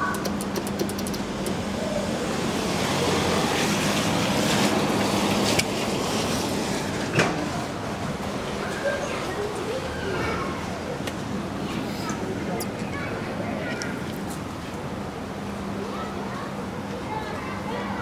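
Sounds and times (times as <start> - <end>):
urban traffic hum: 0.0 - 18.0.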